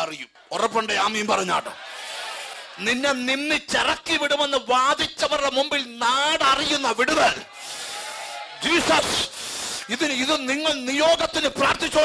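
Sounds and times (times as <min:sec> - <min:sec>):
noisy hiss: 0:08.8 - 0:10.5.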